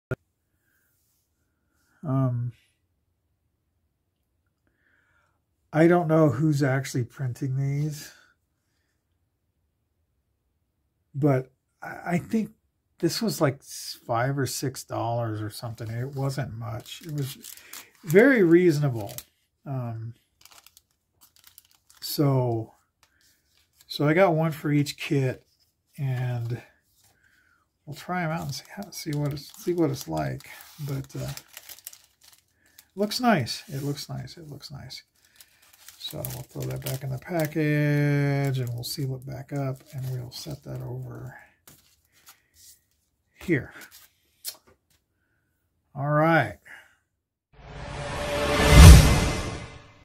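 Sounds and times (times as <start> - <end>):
plastic bag crinkling: 15.9 - 19.5, 20.2 - 22.2, 27.9 - 34.0, 35.2 - 37.6.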